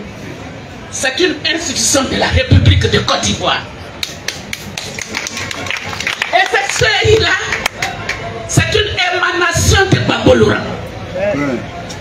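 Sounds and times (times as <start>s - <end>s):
faint background noise: 0.0s - 12.0s
scattered hand claps: 4.0s - 8.3s.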